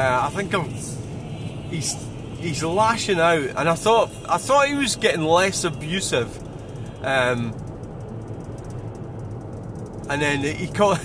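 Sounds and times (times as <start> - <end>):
car cabin road and engine rumble: 0.0 - 11.0.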